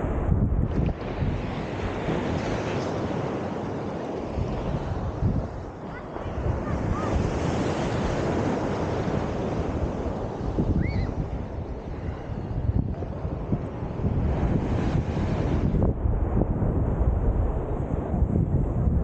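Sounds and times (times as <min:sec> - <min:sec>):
wind buffeting microphone: 0:00.0 - 0:19.0
sea water lapping and splashing: 0:00.7 - 0:15.9.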